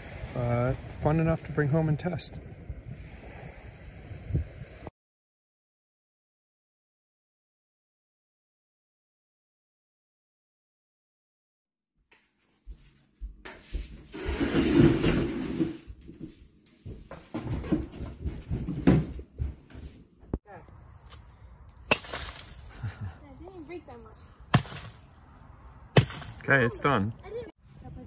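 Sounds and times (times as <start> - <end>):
bat smashing gingerbread houses: 21.9 - 23.2, 24.5 - 25.1, 26.0 - 26.6.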